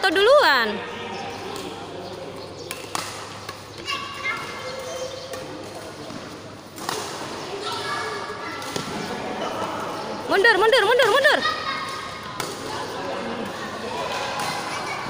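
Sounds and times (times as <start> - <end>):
rackets hitting shuttlecock: 2.4 - 7.4, 8.6 - 9.2, 11.8 - 12.7, 13.4 - 14.8.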